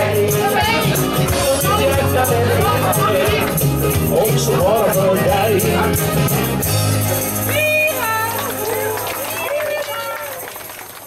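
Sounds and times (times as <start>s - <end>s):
band playing: 0.0s - 10.8s.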